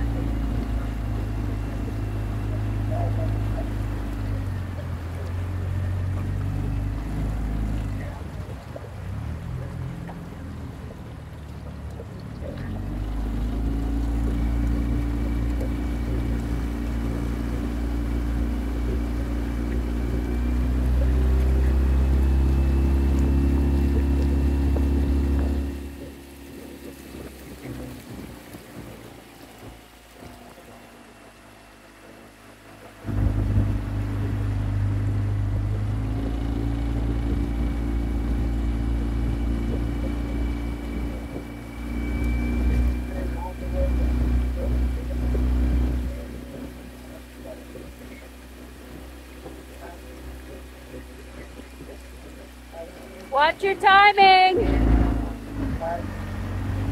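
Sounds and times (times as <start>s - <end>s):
outboard motor running: 0.0s - 56.9s.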